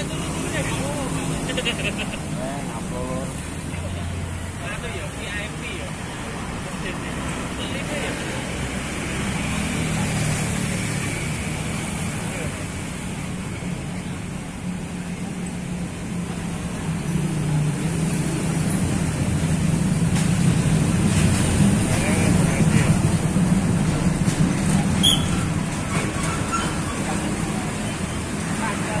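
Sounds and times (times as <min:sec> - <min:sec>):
men talking: 0:00.0 - 0:14.3, 0:21.2 - 0:24.7.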